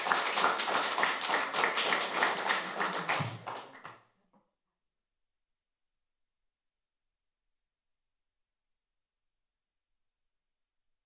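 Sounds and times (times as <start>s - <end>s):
audience applauding: 0.0s - 4.0s.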